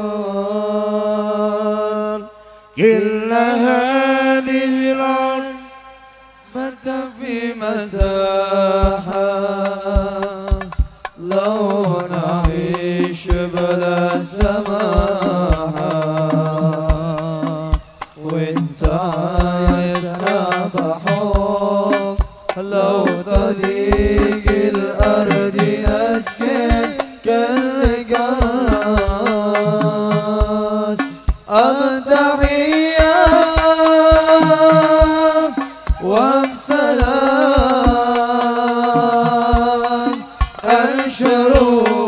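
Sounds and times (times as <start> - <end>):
frame drums: 7.9 - 42.0
person singing wavering line: 11.3 - 42.0.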